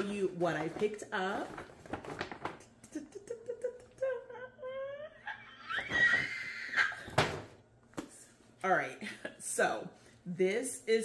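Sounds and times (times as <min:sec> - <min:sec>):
paper bag rustling: 0:00.0 - 0:02.7
woman humming and squealing: 0:02.9 - 0:07.0.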